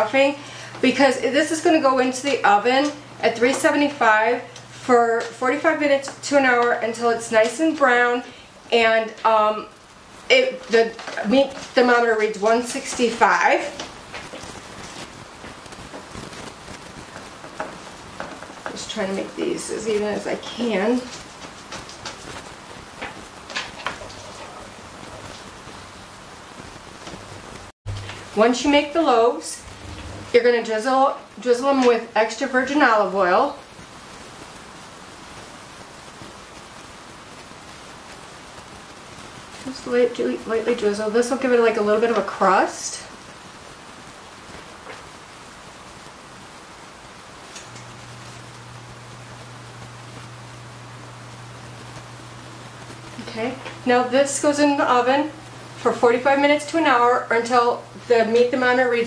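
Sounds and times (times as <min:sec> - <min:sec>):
low steady hum: 0:00.0 - 0:34.1, 0:39.6 - 0:59.0
steady hiss: 0:00.0 - 0:59.0.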